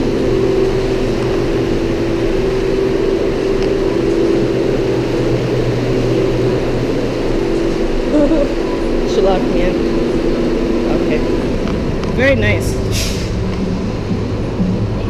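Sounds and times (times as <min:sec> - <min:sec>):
refrigeration unit humming: 0:00.0 - 0:15.0.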